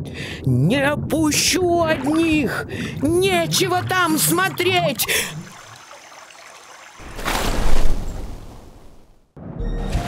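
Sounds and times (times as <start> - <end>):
rushing water: 1.3 - 9.0
loud water splash: 4.9 - 9.0.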